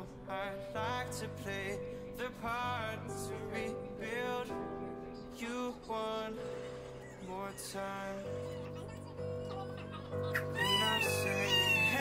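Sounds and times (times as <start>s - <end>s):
newborn baby crying: 7.0s - 12.0s.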